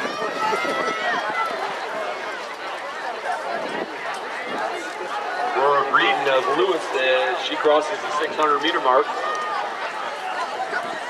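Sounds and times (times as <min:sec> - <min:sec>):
people shouting encouragement: 0:00.0 - 0:02.3.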